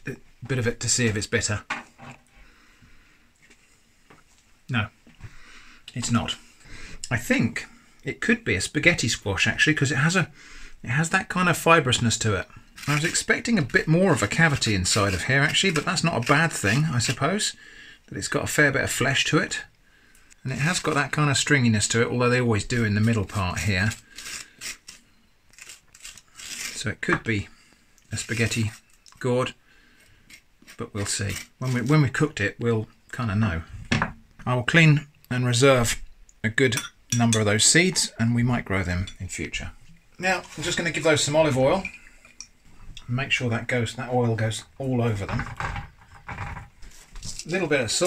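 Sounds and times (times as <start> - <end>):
spoon scraping squash: 11.0 - 17.6, 20.5 - 32.5, 37.1 - 42.5.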